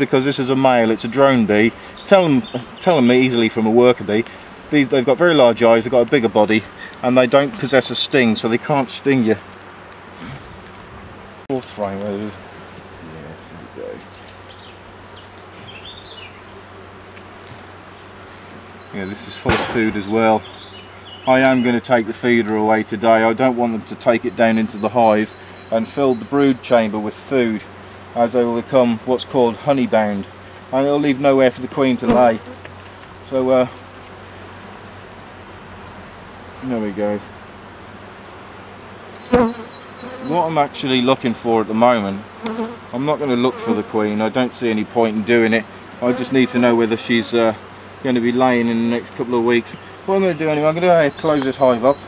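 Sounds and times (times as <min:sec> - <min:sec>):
honeybees buzzing: 0:00.0 - 0:52.0.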